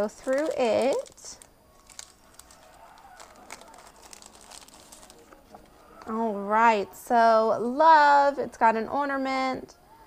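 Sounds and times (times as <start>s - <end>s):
plastic sleeve crinkling: 0.0s - 6.2s.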